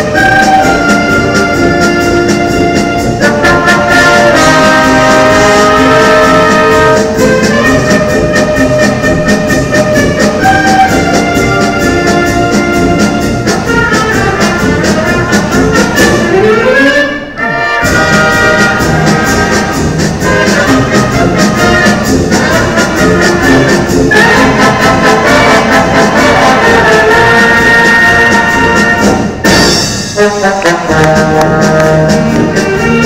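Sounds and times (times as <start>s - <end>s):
brass wind band playing: 0.0s - 33.0s.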